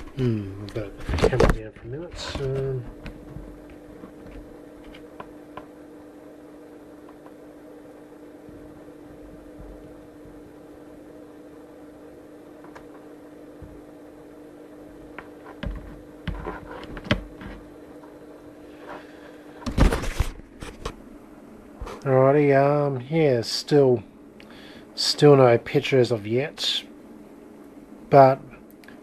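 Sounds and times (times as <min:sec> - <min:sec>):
electrical hum with tone: 0:00.0 - 0:29.0
knocks and clicks of handling: 0:15.0 - 0:17.6.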